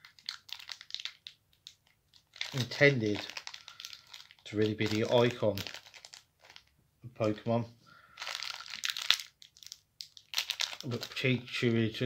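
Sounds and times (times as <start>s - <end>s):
plastic packaging crinkling: 0.0s - 6.8s, 8.1s - 11.5s.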